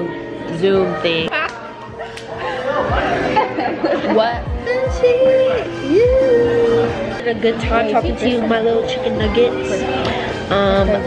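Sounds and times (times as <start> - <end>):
young women chattering: 2.4 - 11.0.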